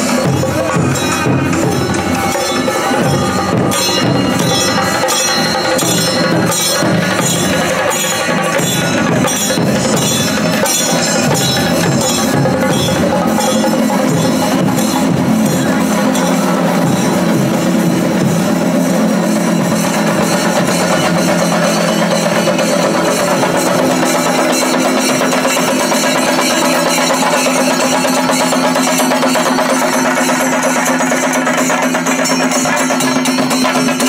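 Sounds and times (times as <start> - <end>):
steady held tones: 0.0 - 31.5
drum ensemble beaten with sticks: 0.0 - 34.0.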